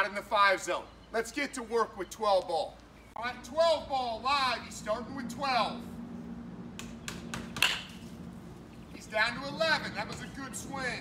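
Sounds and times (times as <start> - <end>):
low steady hum: 0.0 - 11.0
bat cracking ball: 6.8 - 8.0.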